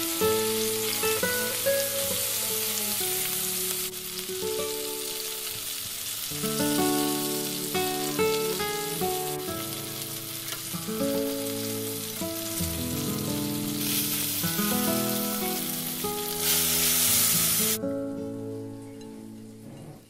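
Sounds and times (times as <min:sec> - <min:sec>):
meat sizzling in a grill pan: 0:00.0 - 0:17.8
gentle background music: 0:00.0 - 0:20.0.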